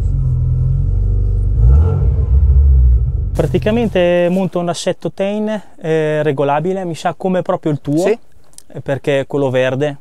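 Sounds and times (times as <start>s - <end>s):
car engine running: 0.0s - 4.1s.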